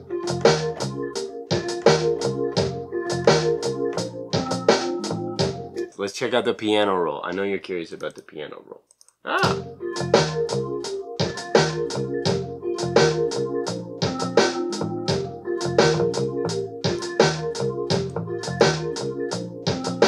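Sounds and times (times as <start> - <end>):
drum machine beat: 0.0 - 5.8, 9.4 - 20.0
synth bass line: 0.0 - 5.8, 9.5 - 10.8, 11.4 - 20.0
held mid-range notes: 0.0 - 6.2.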